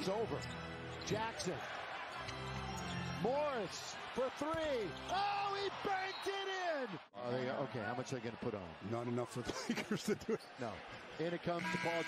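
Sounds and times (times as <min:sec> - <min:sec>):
arena crowd: 0:00.0 - 0:12.0.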